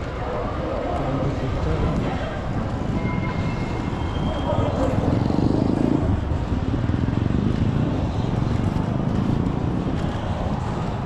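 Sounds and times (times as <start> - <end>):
street traffic: 0.0 - 11.0
wind on microphone: 1.1 - 11.0.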